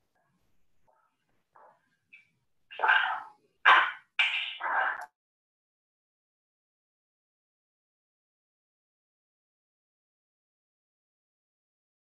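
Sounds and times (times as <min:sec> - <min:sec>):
loud animal calls: 0:02.7 - 0:05.1.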